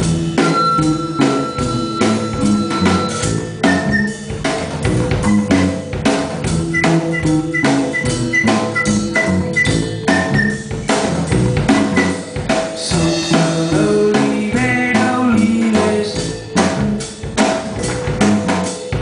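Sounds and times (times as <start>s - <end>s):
drum kit beat: 0.0s - 19.0s
electric bass: 0.0s - 19.0s.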